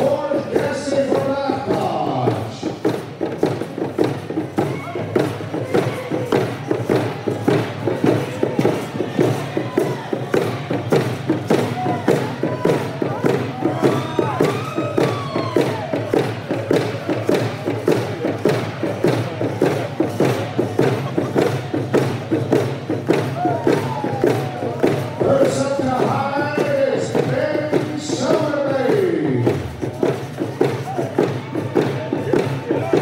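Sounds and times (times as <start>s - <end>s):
hand drums beating: 0.0s - 33.0s.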